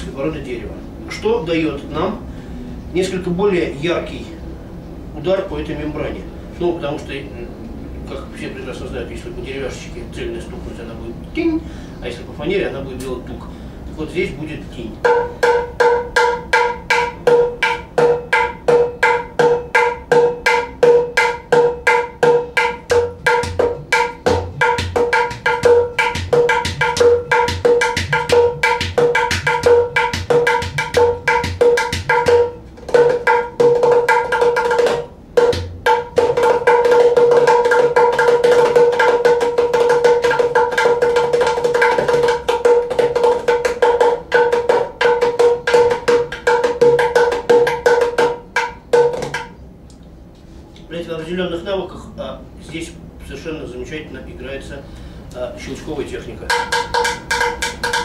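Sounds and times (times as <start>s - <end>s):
deep bass drum tones: 15.0s - 49.4s
hand drum strokes: 15.0s - 49.6s
fast drum roll: 15.8s - 49.5s.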